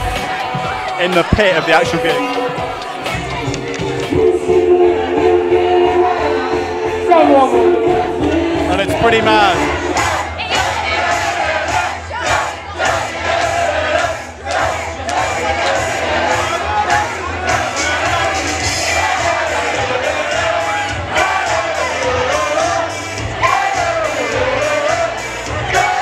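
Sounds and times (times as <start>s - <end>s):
crowd singing and shouting: 0.0s - 26.0s
steady drum beat: 7.7s - 14.3s.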